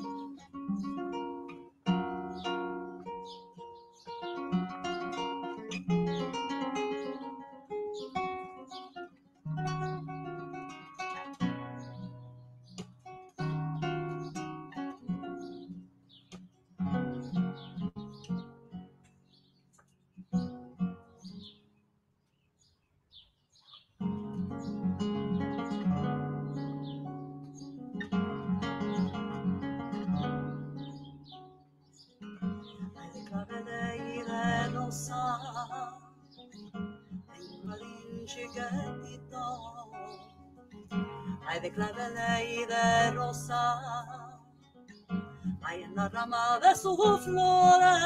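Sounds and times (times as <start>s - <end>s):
flamenco guitar playing: 0.0s - 19.6s, 24.0s - 48.0s.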